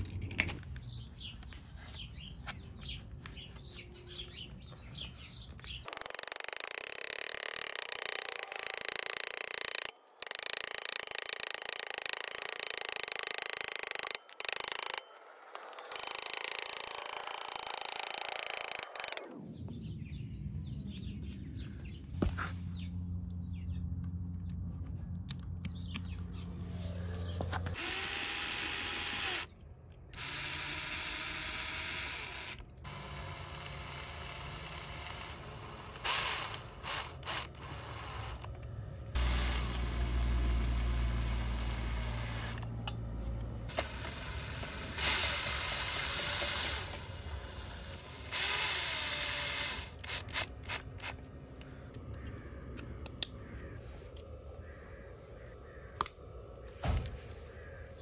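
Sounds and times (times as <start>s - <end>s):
cordless drill whining: 5.9s - 15.1s, 15.7s - 19.3s, 27.7s - 29.5s, 30.2s - 42.7s, 43.6s - 51.2s.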